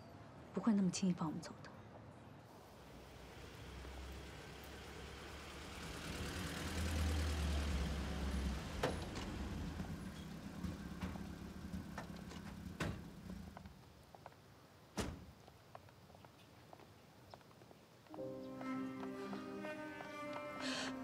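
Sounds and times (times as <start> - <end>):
car door opening and shutting: 10.6 - 13.3, 15.0 - 15.3.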